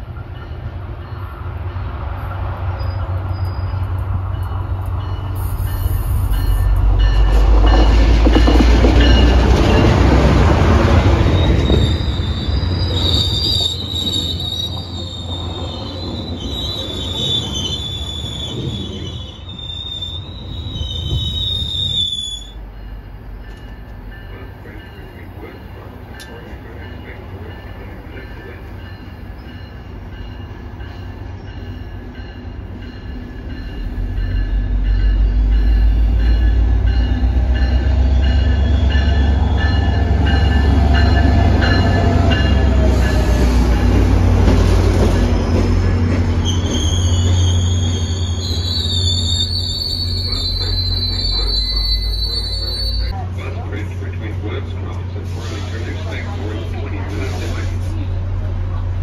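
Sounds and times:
diesel locomotive rumble: 0:00.0 - 0:59.0
train cars rumbling: 0:00.0 - 0:59.0
train wheels squealing: 0:02.7 - 0:09.9, 0:11.0 - 0:25.6, 0:26.2 - 0:53.2.

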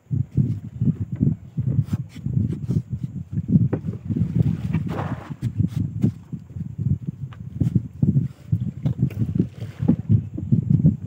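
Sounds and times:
water lapping against boat hull: 0:00.4 - 0:11.0.

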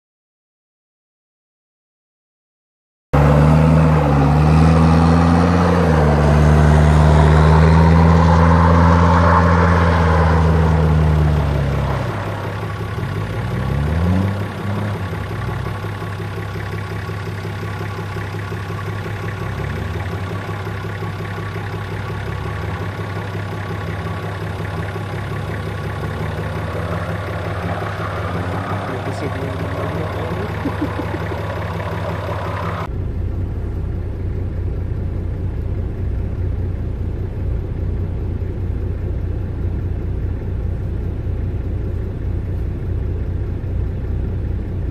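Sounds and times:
engine revving: 0:03.1 - 0:44.9
car engine running: 0:03.2 - 0:44.9.

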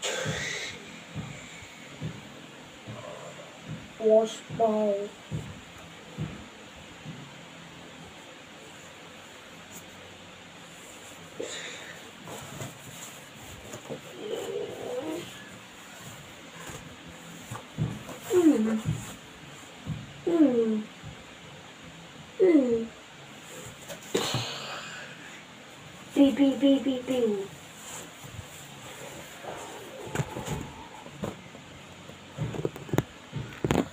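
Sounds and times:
person humming mmm: 0:00.0 - 0:00.9.

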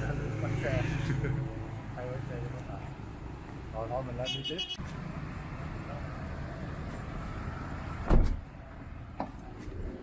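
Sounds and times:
car door shutting: 0:08.0 - 0:08.4.

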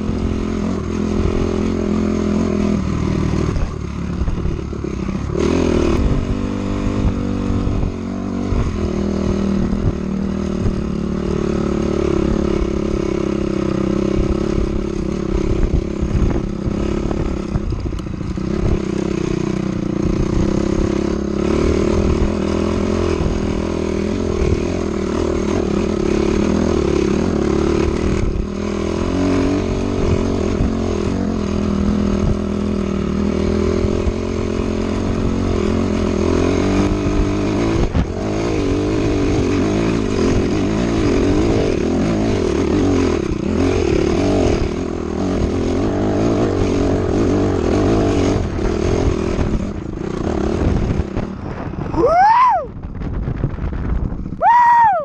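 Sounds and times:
dirt bike engine revving: 0:00.0 - 0:52.7.

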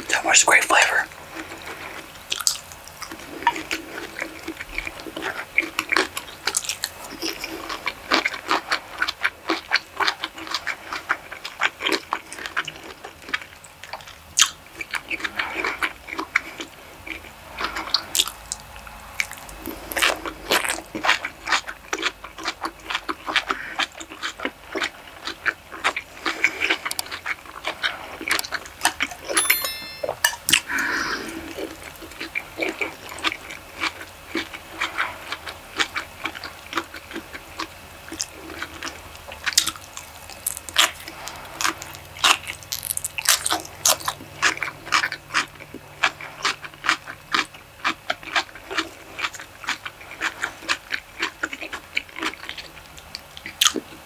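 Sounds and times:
close-miked chewing food: 0:00.0 - 0:29.2, 0:30.5 - 0:54.0.

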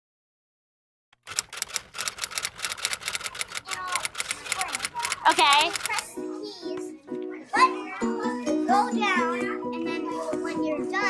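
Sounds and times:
keyboard keys clicking: 0:01.2 - 0:06.1.

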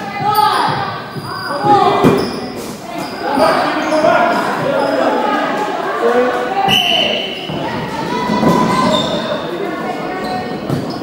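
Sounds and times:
players calling out in echoing hall: 0:00.0 - 0:11.0.

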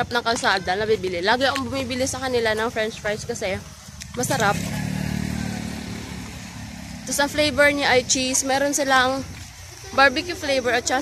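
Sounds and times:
vehicle engine passing: 0:04.1 - 0:09.6.

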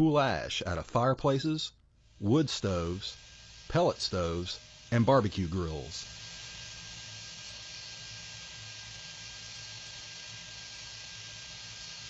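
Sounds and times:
vacuum sucking up ash: 0:02.0 - 0:12.0.

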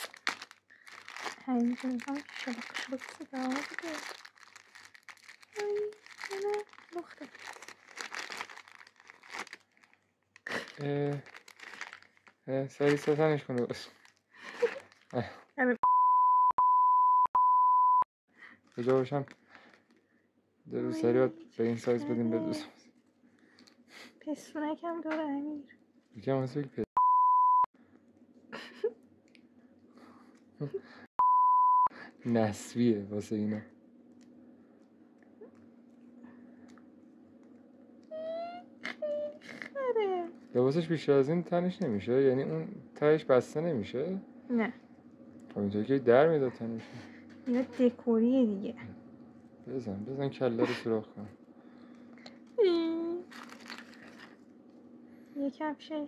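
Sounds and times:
plastic wrapping crinkling: 0:00.0 - 0:15.3, 0:18.6 - 0:20.0, 0:53.2 - 0:54.5
steady pure tone bleep: 0:15.8 - 0:18.1, 0:27.0 - 0:27.7, 0:31.2 - 0:31.9
speech: 0:20.7 - 0:22.8, 0:49.8 - 0:51.3.

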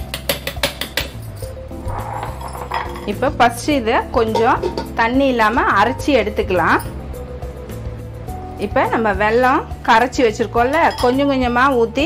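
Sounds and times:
metal strainer clinking on jar: 0:02.1 - 0:03.4, 0:04.2 - 0:05.0, 0:10.7 - 0:11.2.

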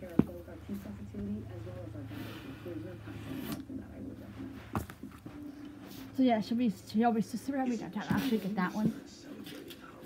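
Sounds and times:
faint voices talking: 0:00.0 - 0:10.0
low steady hum: 0:00.0 - 0:10.0.

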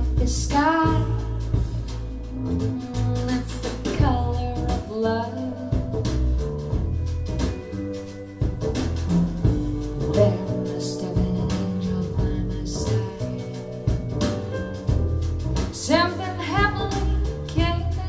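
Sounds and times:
song from speakers in a room: 0:00.0 - 0:18.0.

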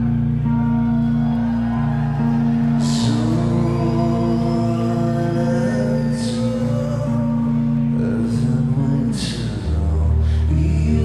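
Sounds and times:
bass line: 0:00.0 - 0:11.0
held electric guitar notes: 0:00.0 - 0:11.0.

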